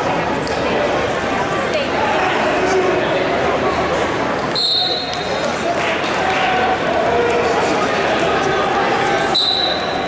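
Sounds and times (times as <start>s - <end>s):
people chattering: 0.0s - 10.0s
referee whistle blast: 4.6s - 5.1s, 9.3s - 10.0s.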